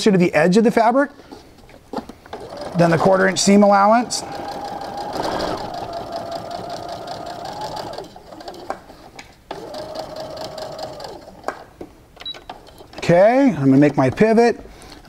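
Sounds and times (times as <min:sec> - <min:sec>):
sewing machine motor running: 0:02.3 - 0:08.9, 0:09.5 - 0:11.6.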